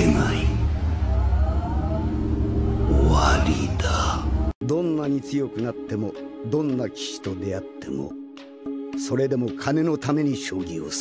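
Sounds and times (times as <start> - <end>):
deep steady rumble: 0.0 - 4.6
faint rising whine: 0.0 - 4.6.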